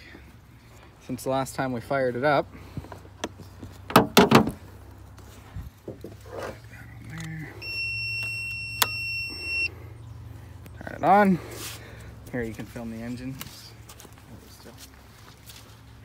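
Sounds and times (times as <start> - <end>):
loud metallic knocks: 3.9 - 4.6
steady electronic beep: 7.6 - 9.7.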